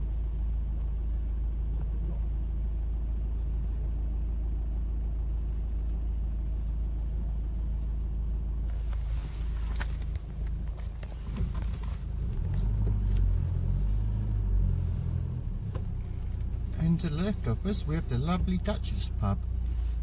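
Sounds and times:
car engine hum: 0:00.0 - 0:20.0
road rumble: 0:00.0 - 0:20.0.

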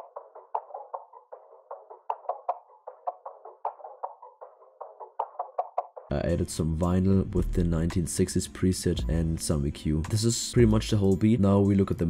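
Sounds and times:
thin percussion loop: 0:00.0 - 0:06.0, 0:10.0 - 0:12.0.

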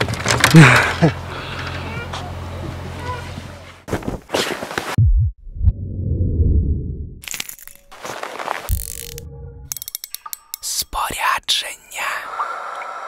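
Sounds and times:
fishing reel clicks: 0:08.7 - 0:10.7.

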